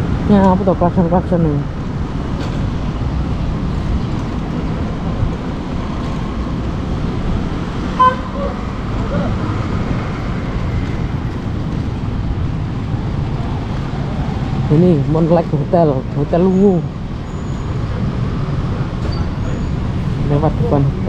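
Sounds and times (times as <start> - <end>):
road rumble from scooter wheels: 0.0 - 21.0
short sharp horn beep: 8.0 - 8.6.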